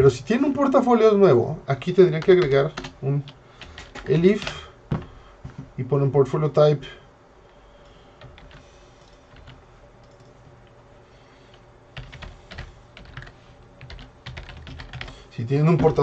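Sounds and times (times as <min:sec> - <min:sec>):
typing on computer keyboard: 0:03.6 - 0:04.6, 0:08.2 - 0:08.6, 0:12.0 - 0:15.2.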